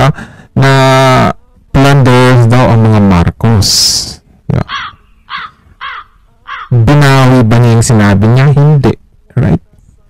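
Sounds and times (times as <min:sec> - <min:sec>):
bird cawing: 0:04.6 - 0:06.8.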